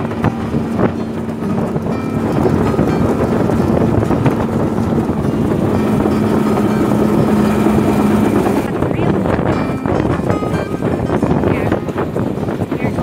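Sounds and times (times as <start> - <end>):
outboard motor running: 0.0 - 13.0
rushing water: 0.0 - 13.0
wind on microphone: 0.0 - 13.0.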